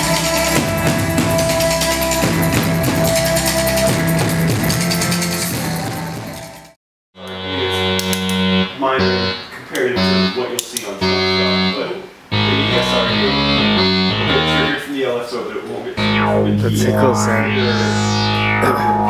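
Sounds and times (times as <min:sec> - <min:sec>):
live band with drums: 0:00.0 - 0:06.6
synthesizer chords over bass: 0:07.2 - 0:14.8, 0:16.0 - 0:19.0.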